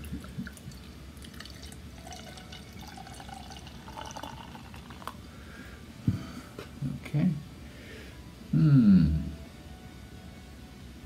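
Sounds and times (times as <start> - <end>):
beer glugging and fizzing: 0.0 - 5.2.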